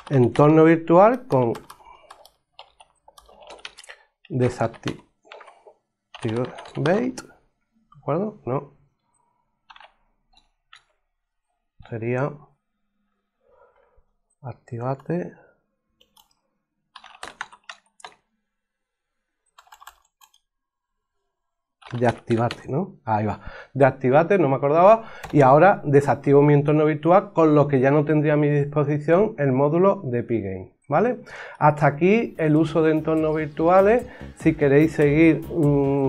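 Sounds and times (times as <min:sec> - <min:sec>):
computer keyboard typing: 0:00.0 - 0:07.4, 0:09.6 - 0:11.0, 0:16.0 - 0:18.2, 0:19.5 - 0:20.5, 0:21.8 - 0:22.6, 0:25.1 - 0:25.5.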